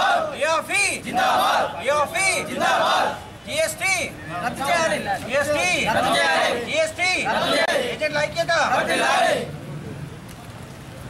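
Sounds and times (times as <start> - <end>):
crowd of men shouting: 0.0 - 9.5.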